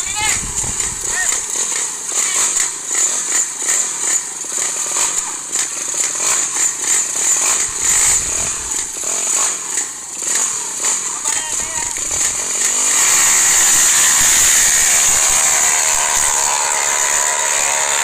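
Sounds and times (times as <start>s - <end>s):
motorcycle engines revving: 0.0s - 18.0s.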